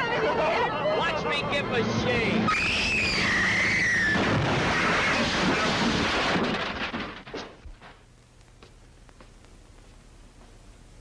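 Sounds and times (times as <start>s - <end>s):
loud car crash: 2.5s - 7.6s
debris clattering: 4.2s - 8.0s.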